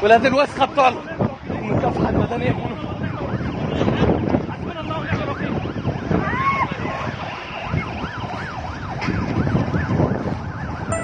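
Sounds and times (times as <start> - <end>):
dense noisy background: 0.0 - 11.0
emergency vehicle siren wailing: 2.9 - 11.0.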